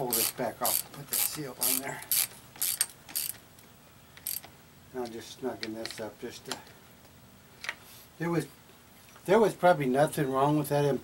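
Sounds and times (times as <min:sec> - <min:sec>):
socket ratchet clicking: 0:00.1 - 0:03.4, 0:04.2 - 0:04.5.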